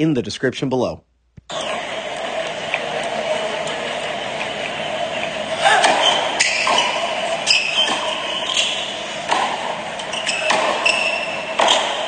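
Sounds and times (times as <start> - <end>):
arena ambience hum: 0.0 - 12.0
tennis ball bouncing on court: 2.1 - 12.0.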